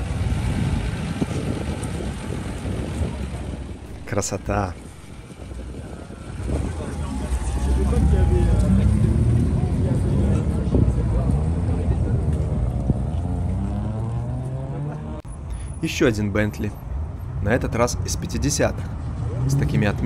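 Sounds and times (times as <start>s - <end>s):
car engine pulling away: 0.0s - 15.8s.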